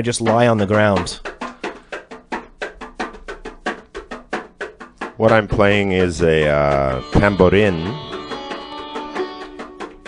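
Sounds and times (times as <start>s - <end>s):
small frame drum struck with stick: 0.0s - 10.0s.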